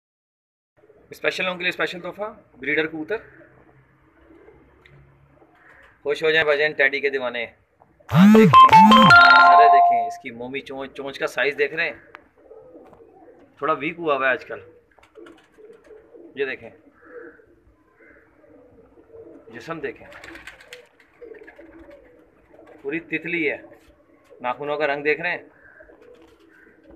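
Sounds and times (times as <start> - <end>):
pigeon cooing: 12.4 - 13.6, 14.6 - 22.8, 25.4 - 26.9.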